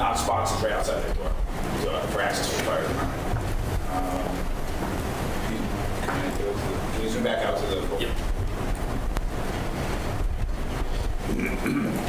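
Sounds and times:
low rumble: 0:00.0 - 0:11.4
rushing microphone noise: 0:00.0 - 0:12.0.

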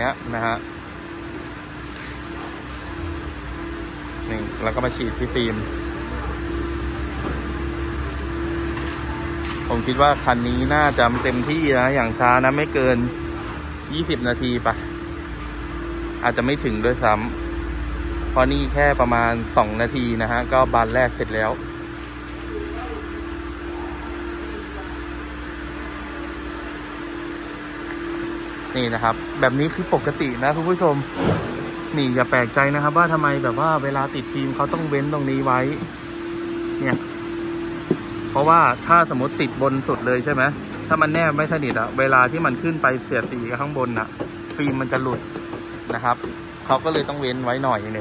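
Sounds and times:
steady mechanical hum: 0:00.0 - 0:48.0
mechanical drone: 0:27.5 - 0:48.0.

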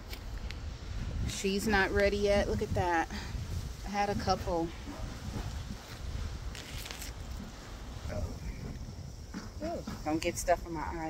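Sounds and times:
wind buffeting microphone: 0:00.0 - 0:11.0
brief rustling: 0:05.4 - 0:07.6.

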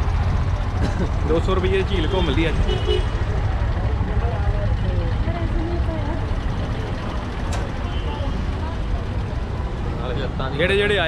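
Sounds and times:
faint voices: 0:00.0 - 0:11.0
road traffic rumble: 0:00.0 - 0:11.0.

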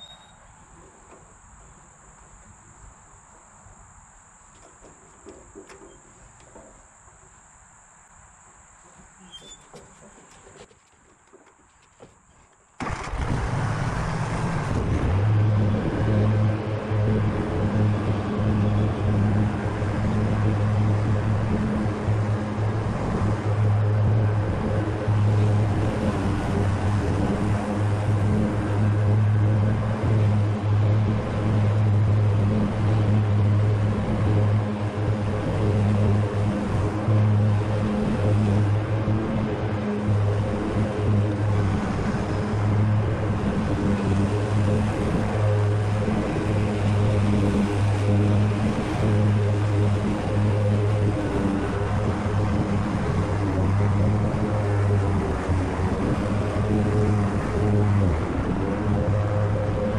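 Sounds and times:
riding mower engine hum: 0:00.0 - 0:59.9.

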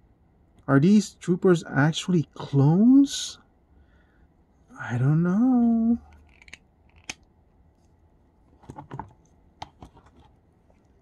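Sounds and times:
plastic action figures clicking: 0:06.1 - 0:07.2.

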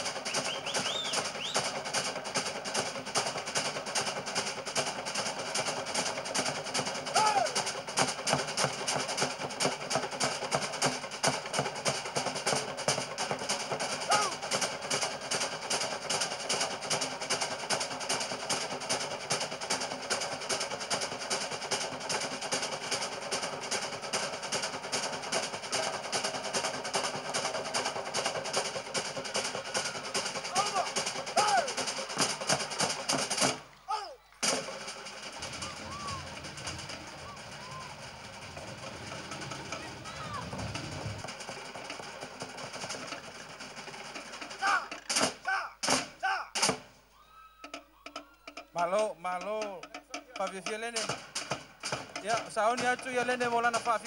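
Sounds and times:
loud drum strikes: 0:00.0 - 0:21.1, 0:21.7 - 0:33.6, 0:34.4 - 0:46.9, 0:47.7 - 0:54.0
rapid drumming: 0:00.0 - 0:54.0
faint voices: 0:35.4 - 0:41.3.

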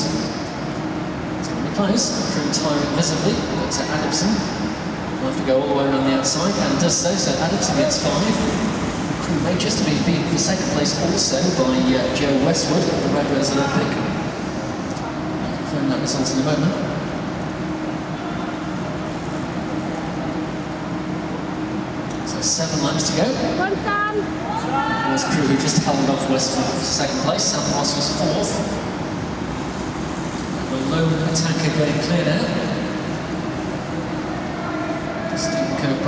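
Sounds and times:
rushing hum of large hall: 0:00.0 - 0:36.0.

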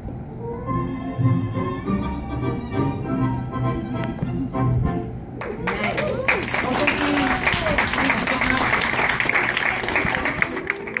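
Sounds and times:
hands clapping: 0:05.4 - 0:11.0.

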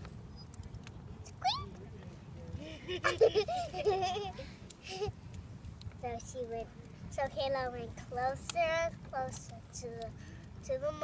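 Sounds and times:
child's high-pitched squeak: 0:01.4 - 0:01.7.

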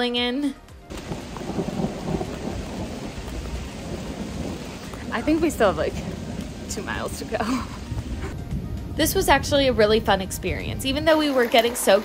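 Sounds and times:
steady rain falling: 0:00.9 - 0:09.1
low rumble: 0:01.0 - 0:11.1.

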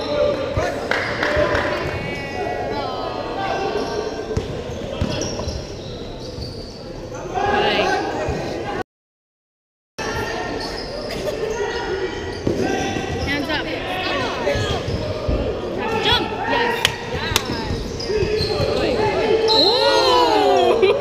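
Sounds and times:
players and spectators calling out: 0:07.0 - 0:08.8, 0:10.0 - 0:21.0.

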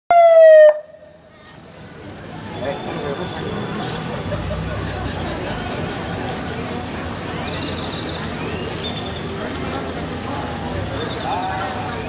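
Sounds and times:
ambulance siren blast: 0:00.1 - 0:01.0
faint street noise: 0:00.1 - 0:12.0.

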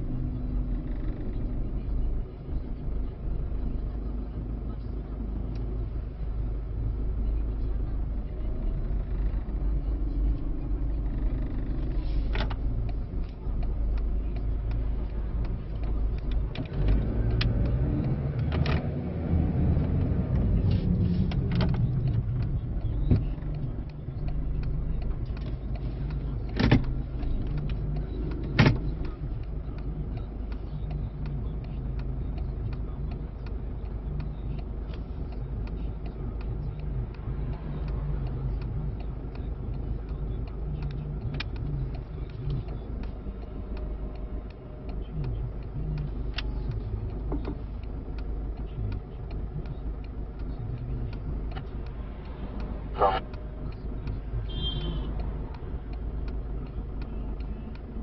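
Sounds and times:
engine and tyre rumble: 0:00.0 - 0:58.0.

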